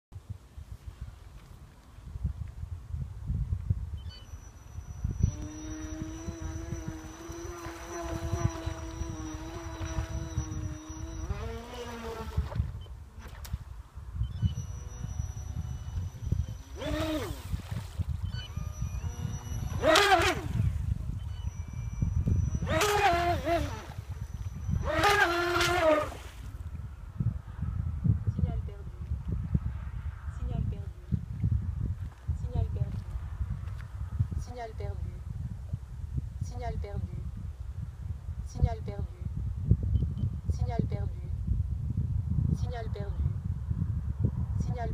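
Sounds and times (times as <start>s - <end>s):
rc boat electric motor whining: 4.0s - 13.4s, 14.3s - 26.6s.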